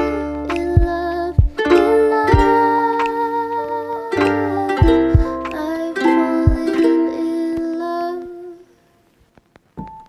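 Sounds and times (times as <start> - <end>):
plucked-string background music: 0.0 - 8.5.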